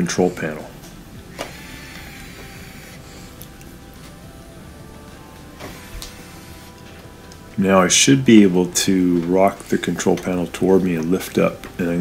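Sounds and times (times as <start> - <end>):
cordless drill motor whine: 1.1 - 7.2
drill click: 1.3 - 3.6, 5.6 - 6.8.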